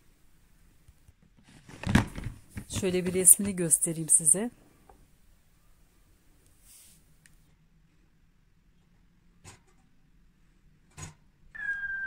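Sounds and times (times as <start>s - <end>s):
thin high-pitched squeal: 11.6s - 12.0s.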